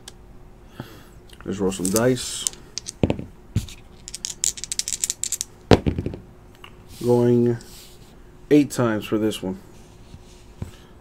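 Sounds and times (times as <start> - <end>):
dice tumbling on a table mat: 1.8 - 6.2.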